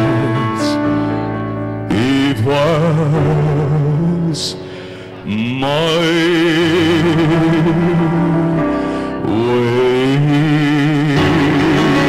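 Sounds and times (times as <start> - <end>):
man singing with vibrato: 0.0 - 12.0.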